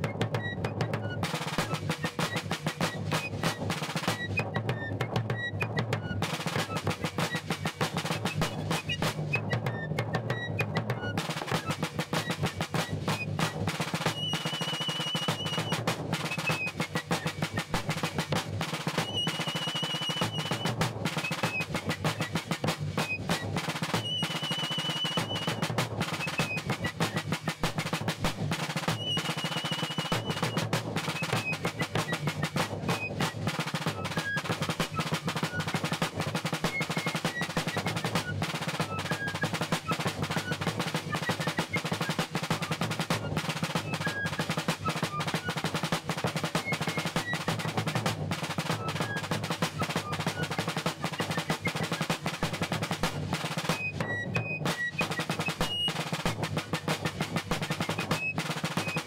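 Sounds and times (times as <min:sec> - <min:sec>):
snare drum march cadence: 0:00.0 - 0:59.0.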